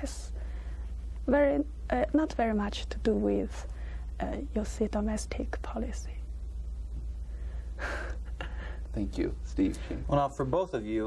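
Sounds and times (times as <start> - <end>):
steady low hum: 0.0 - 11.0
sharp intake of breath: 7.3 - 8.9.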